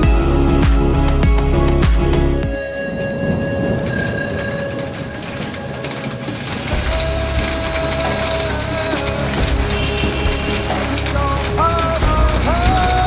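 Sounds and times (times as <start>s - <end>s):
background music with a beat: 0.0s - 3.7s, 6.6s - 13.0s
low thunder rumble: 2.6s - 13.0s
rain hissing: 2.6s - 13.0s.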